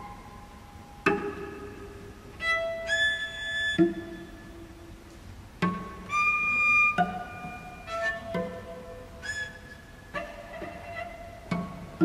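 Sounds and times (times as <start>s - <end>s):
cellos playing: 2.4s - 4.3s, 5.6s - 9.4s.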